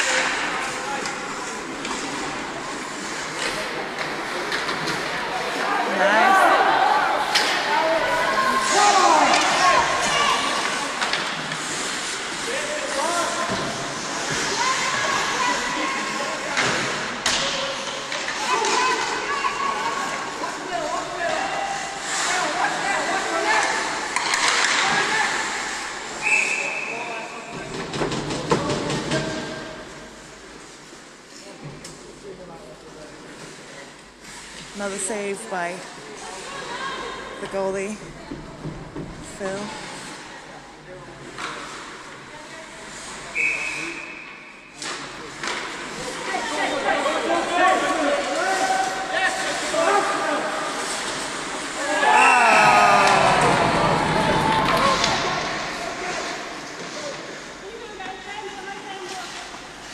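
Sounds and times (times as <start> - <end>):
people shouting: 51.8 - 55.3.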